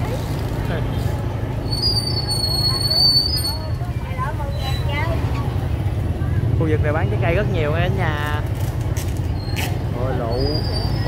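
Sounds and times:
low crowd rumble: 0.0s - 10.1s
people talking: 2.4s - 8.4s, 10.0s - 11.0s.

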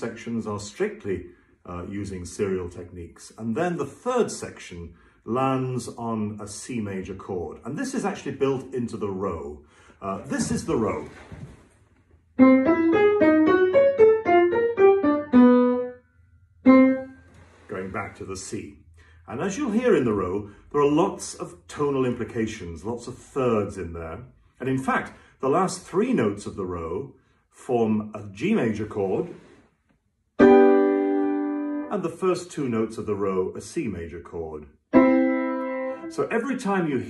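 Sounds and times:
piano single notes: 12.4s - 17.5s, 30.4s - 31.9s, 34.9s - 36.2s.

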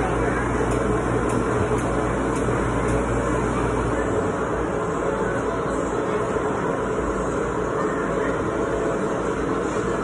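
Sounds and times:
mechanical drone with low hum: 0.0s - 10.0s.

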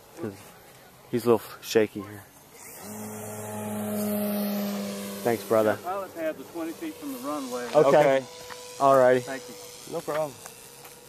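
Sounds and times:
model propeller plane engine droning: 2.4s - 11.0s.

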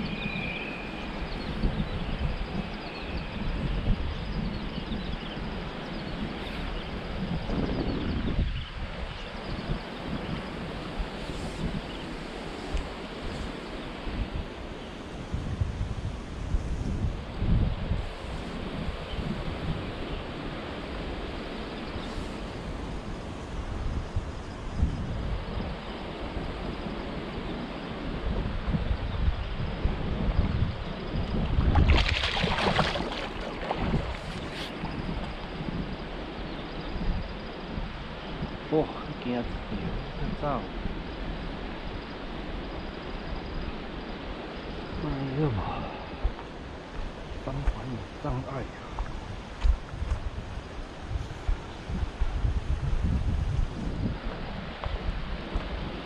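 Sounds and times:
wind buffeting microphone: 0.0s - 56.0s
river rushing over rocks: 31.8s - 34.8s.

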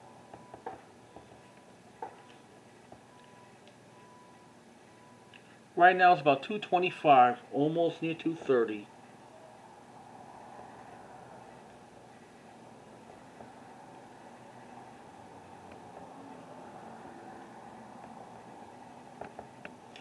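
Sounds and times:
low hum and hiss: 0.0s - 20.0s.

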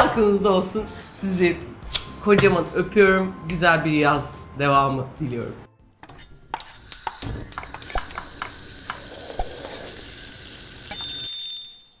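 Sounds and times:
food sizzling in a pan: 7.0s - 10.9s
bell-like ding: 10.9s - 12.0s.

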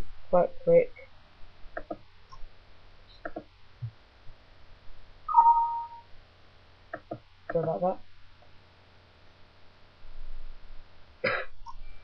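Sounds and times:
person coughing: 11.2s - 11.6s.

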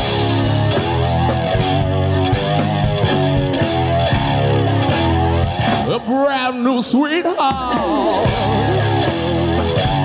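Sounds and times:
drums: 0.0s - 10.0s
electric bass guitar: 0.0s - 10.0s
electric guitar: 0.0s - 10.0s.

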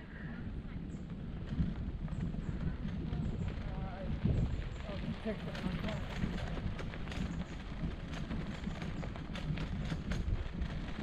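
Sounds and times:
camera rumbling over dirt track: 0.0s - 11.0s.

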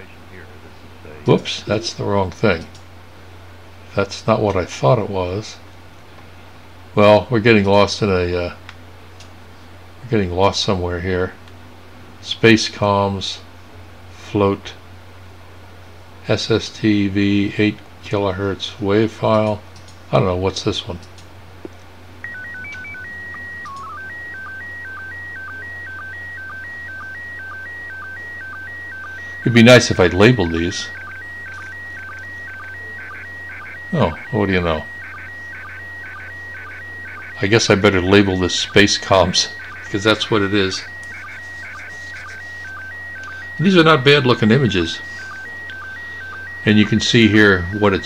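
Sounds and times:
faint low hum: 0.0s - 48.0s
sstv whistle-like tones: 22.3s - 48.0s.

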